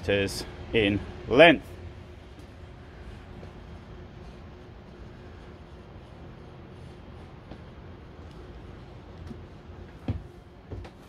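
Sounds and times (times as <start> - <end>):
hall background rumble and hum: 0.0 - 11.0.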